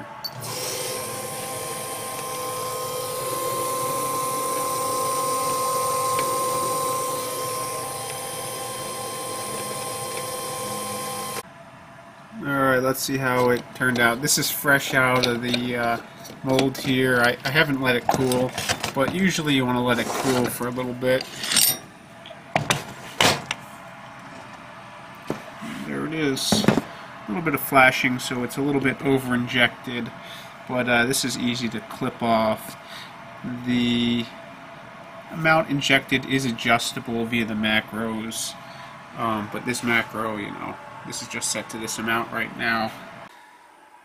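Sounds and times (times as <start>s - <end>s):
stepper motor whine: 0.0s - 11.4s
metal plates scraping: 14.8s - 21.9s.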